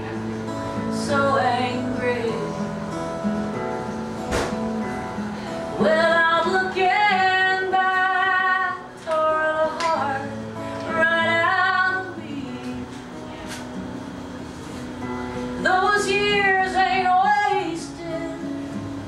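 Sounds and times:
acoustic guitar: 0.0s - 19.0s.

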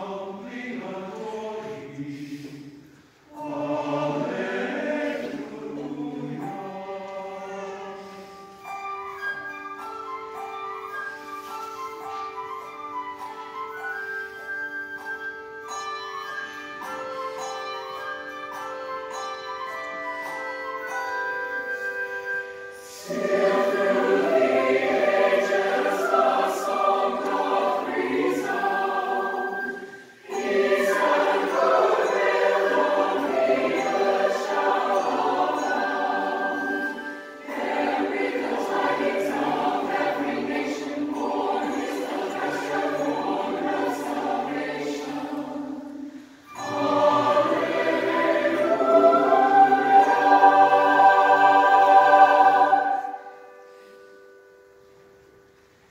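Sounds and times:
mixed choir singing: 0.0s - 8.6s, 22.8s - 53.6s.

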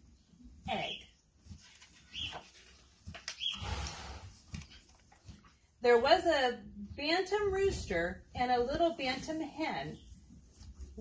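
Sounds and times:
pony blowing and snuffling: 3.5s - 4.6s
pony snorting: 3.6s - 4.5s.

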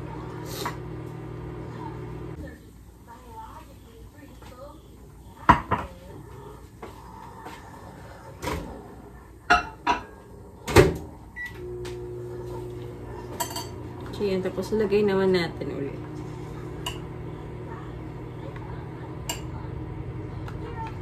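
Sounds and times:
microwave oven humming: 0.0s - 3.6s, 6.9s - 21.0s.

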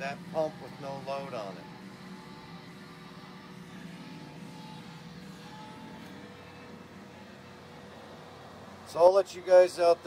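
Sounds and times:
electric pump humming: 0.0s - 10.0s.

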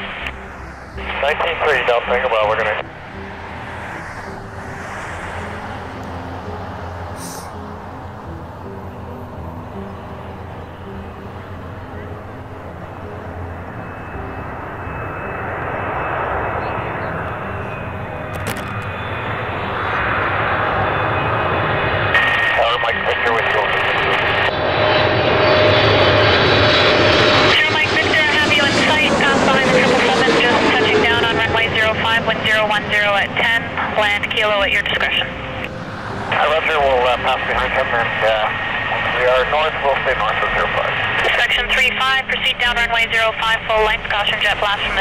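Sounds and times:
high jet whine: 0.0s - 45.0s
jet airliner roar: 0.0s - 45.0s.

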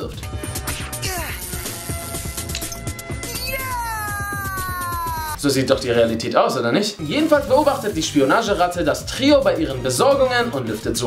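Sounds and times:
long falling high cry: 3.3s - 5.4s
soundtrack music with quick beat: 7.0s - 11.0s.

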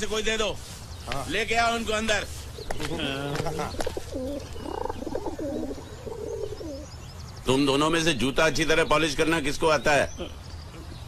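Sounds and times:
pigeon cooing: 2.6s - 6.9s.

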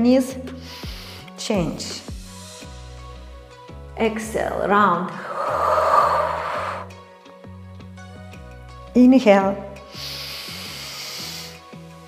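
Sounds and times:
background music: 0.0s - 12.0s
woman exhaling: 5.1s - 6.9s.

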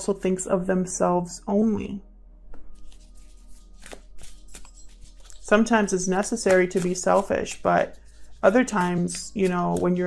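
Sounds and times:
soft background music: 0.0s - 10.0s
cards rustling and flicking: 2.8s - 10.0s.

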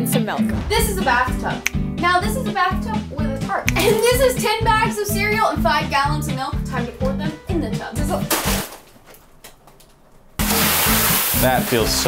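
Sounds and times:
background music with beat: 0.0s - 8.1s.

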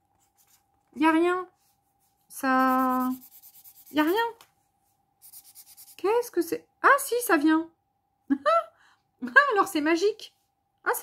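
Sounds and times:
marker scratching on paper: 2.4s - 4.2s, 5.2s - 6.1s.

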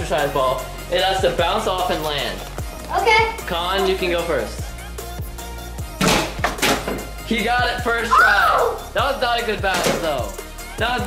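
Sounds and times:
electronic music with beat: 0.0s - 6.0s, 7.0s - 11.0s
plastic bottle thunks: 6.0s - 7.1s, 9.7s - 10.2s.

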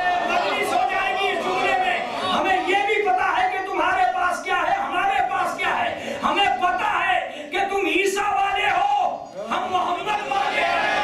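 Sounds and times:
crowd of voices: 0.0s - 3.3s, 9.2s - 11.0s.

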